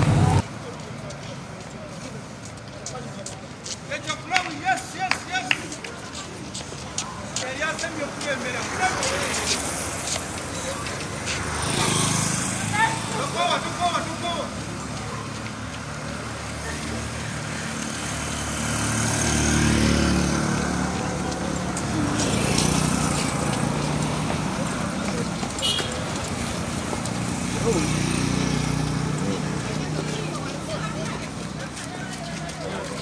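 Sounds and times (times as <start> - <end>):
runners calling out: 0.0 - 33.0.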